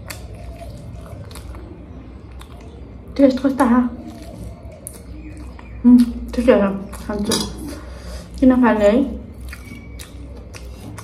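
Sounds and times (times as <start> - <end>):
chewing mouth sounds: 0.0 - 3.2, 4.0 - 8.4, 9.2 - 11.0.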